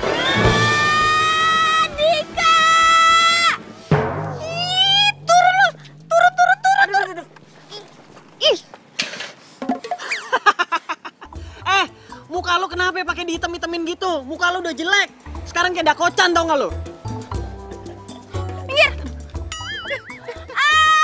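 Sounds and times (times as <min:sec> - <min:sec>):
high shouted cries: 0:00.0 - 0:03.7, 0:04.3 - 0:07.4, 0:19.8 - 0:21.0
person screaming: 0:04.4 - 0:07.3, 0:20.4 - 0:21.0.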